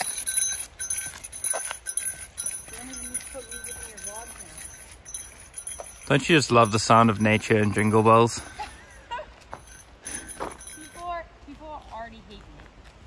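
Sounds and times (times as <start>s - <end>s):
jingle bell jingling: 0.0s - 11.2s.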